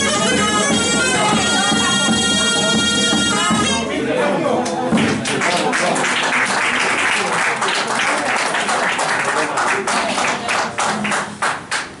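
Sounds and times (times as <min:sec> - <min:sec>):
applause: 0:05.0 - 0:12.0.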